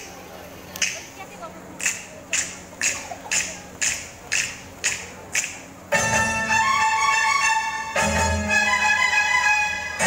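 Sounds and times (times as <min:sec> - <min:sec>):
faint voices: 0:00.0 - 0:05.9
sharp hissy clap-like beats: 0:00.0 - 0:07.4.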